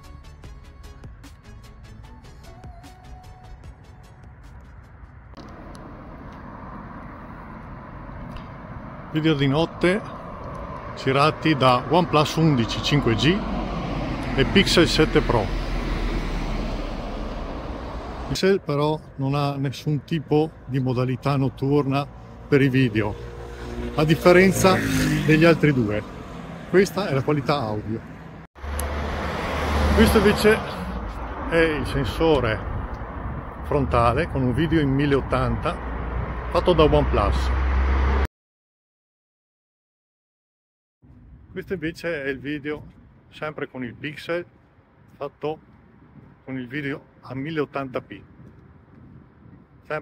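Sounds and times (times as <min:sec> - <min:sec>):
low traffic rumble: 0:03.7 - 0:38.3, 0:41.0 - 0:50.0.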